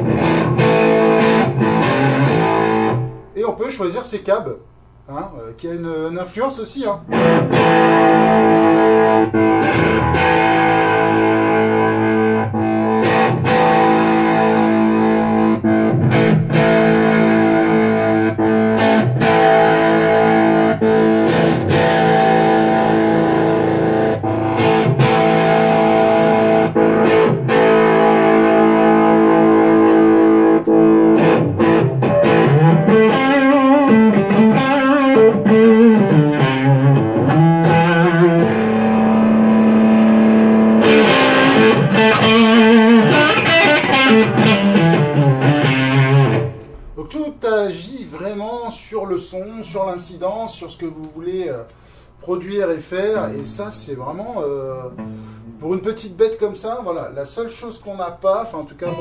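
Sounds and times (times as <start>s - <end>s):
overdriven electric guitar: 0.0s - 3.4s, 7.1s - 47.0s, 55.0s - 55.6s.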